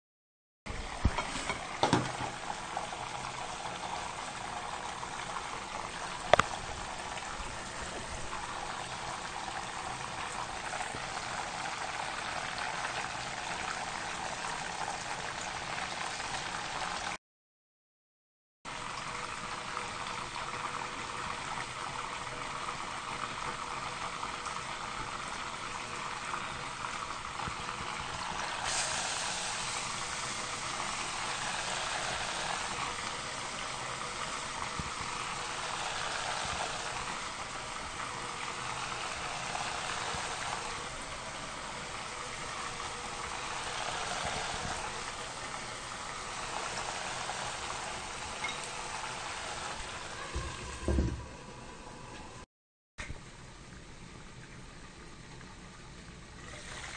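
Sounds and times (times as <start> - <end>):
oil bubbling and sizzling: 0.7 - 17.2, 18.7 - 56.9.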